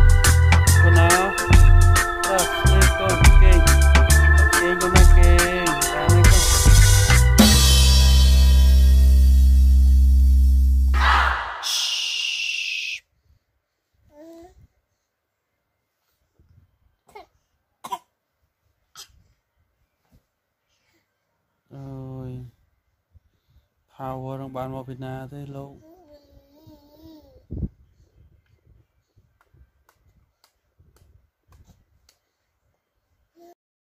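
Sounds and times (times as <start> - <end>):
baby coughing: 17.1 - 18.2, 18.9 - 19.2.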